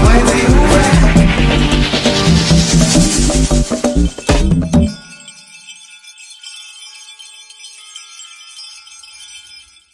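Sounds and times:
drum-driven music: 0.0 - 5.2
wind chimes ringing: 3.6 - 9.9.

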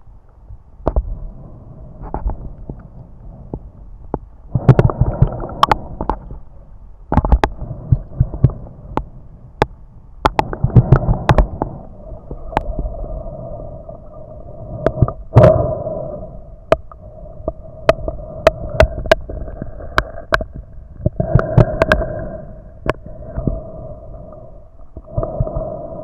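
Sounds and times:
faint steady hum: 0.0 - 26.0
sharp clicks and knocks: 7.1 - 11.7.

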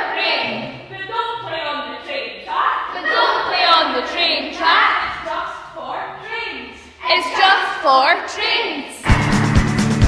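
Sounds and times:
children chanting: 0.0 - 9.1.

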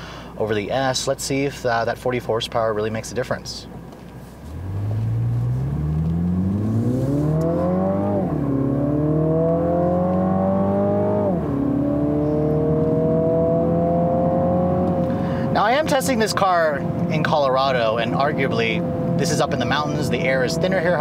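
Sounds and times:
car engine accelerating hard: 4.4 - 21.0.

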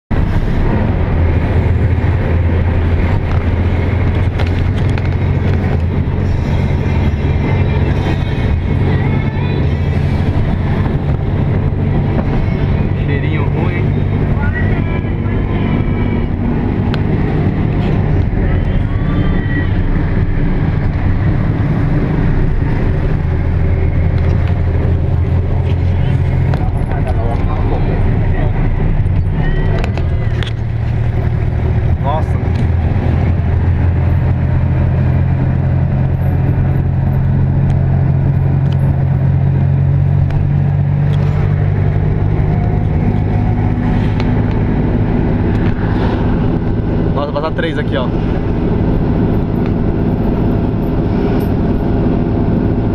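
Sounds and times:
tuk-tuk engine running: 0.1 - 52.9.

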